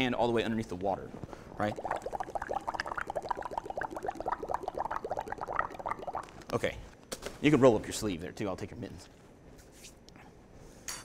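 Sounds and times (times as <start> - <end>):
gas bubbling in soapy water: 1.6 - 6.6.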